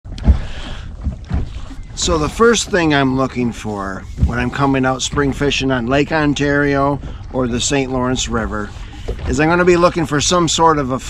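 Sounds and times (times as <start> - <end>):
waves slapping boat hull: 0.0 - 11.0
wind on microphone: 0.1 - 11.0.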